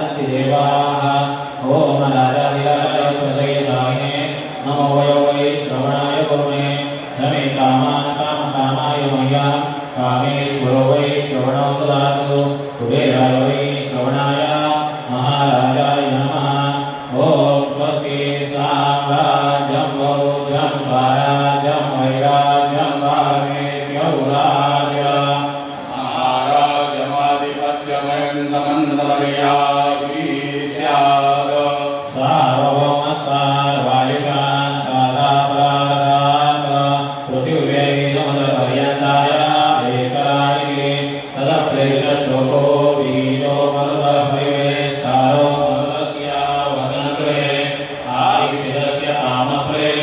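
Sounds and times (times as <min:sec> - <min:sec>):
person chanting: 0:00.0 - 0:50.0.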